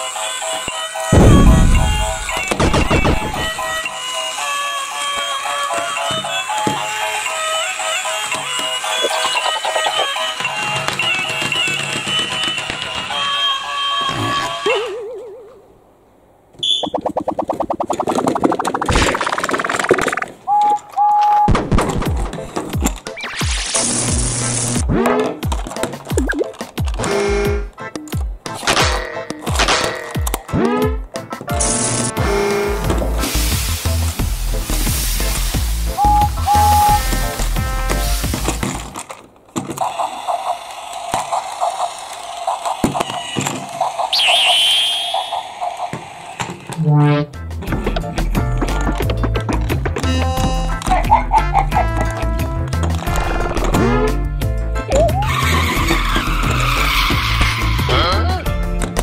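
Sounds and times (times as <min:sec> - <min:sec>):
deep falling thud: 0:01.1 - 0:03.5
pulsing electronic tone rising: 0:01.1 - 0:03.6
plastic toys clicking: 0:08.1 - 0:13.4, 0:25.3 - 0:30.5, 0:38.3 - 0:44.0
high wavering whistle-like tone: 0:44.1 - 0:45.5
short high electronic beeps: 0:44.2 - 0:45.4.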